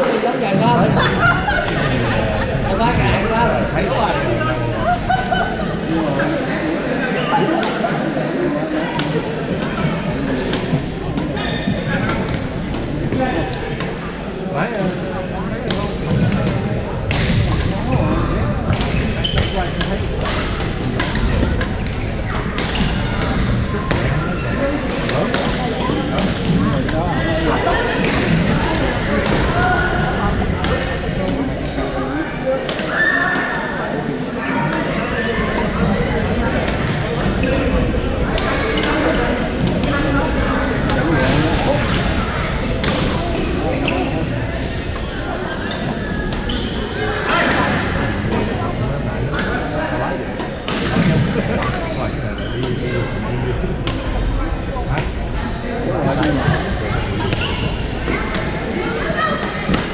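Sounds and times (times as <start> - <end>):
hubbub of voices: 0.0 - 59.9
badminton rackets hitting shuttlecocks: 18.7 - 27.0, 28.0 - 29.7, 32.6 - 33.6, 42.8 - 44.0, 57.2 - 58.7.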